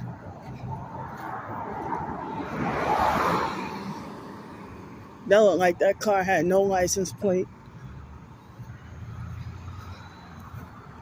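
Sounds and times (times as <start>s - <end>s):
car passing: 0.0s - 11.0s.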